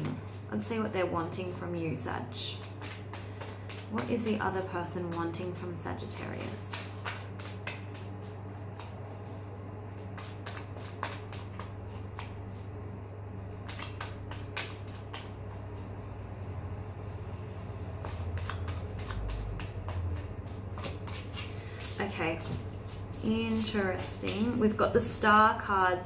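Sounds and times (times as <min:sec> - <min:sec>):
steady low hum: 0:00.0 - 0:26.0
cards being shuffled: 0:02.3 - 0:16.3, 0:17.8 - 0:24.8.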